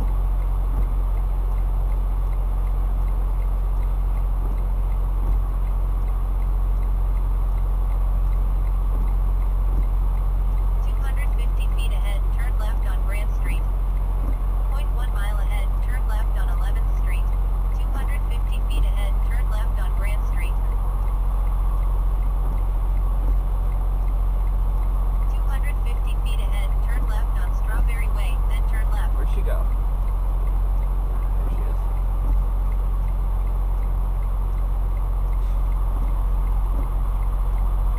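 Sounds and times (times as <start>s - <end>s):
diesel engine idling: 0.0s - 37.9s
indistinct voices: 10.8s - 13.7s, 14.7s - 20.7s, 25.3s - 29.7s.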